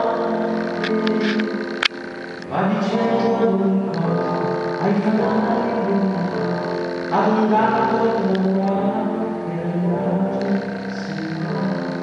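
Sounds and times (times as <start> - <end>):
man singing into a microphone: 0.0 - 1.8, 2.4 - 12.0.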